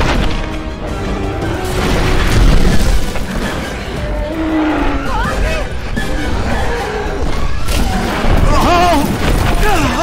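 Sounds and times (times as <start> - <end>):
action film score: 0.0 - 10.0.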